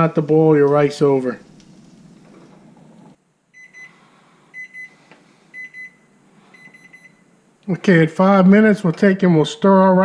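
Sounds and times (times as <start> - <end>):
microwave timer beeping: 3.6 - 4.0, 4.6 - 5.0, 5.6 - 7.2.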